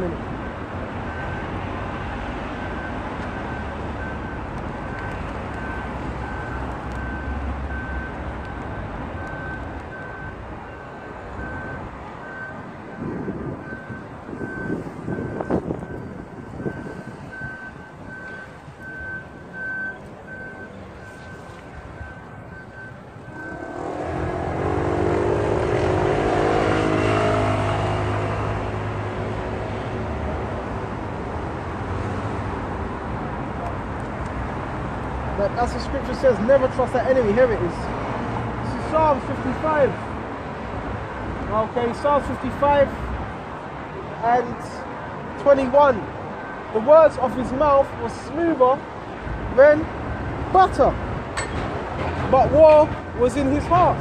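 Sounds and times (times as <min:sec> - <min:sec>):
high beep: 0:22.0 - 0:23.9
large vehicle engine passing: 0:23.3 - 0:30.1.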